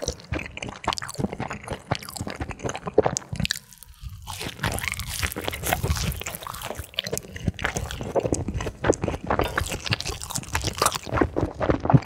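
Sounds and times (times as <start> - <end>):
crunching and chewing food: 0.0 - 12.0.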